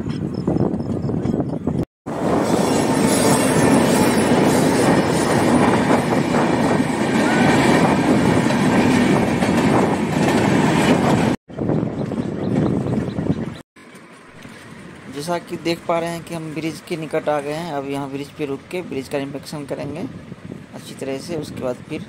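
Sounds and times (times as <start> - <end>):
steel wheels rumbling on rails: 0.1 - 20.8.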